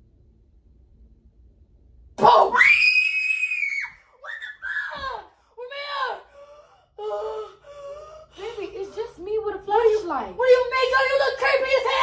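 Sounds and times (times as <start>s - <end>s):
person screaming in fright: 2.3s - 5.2s.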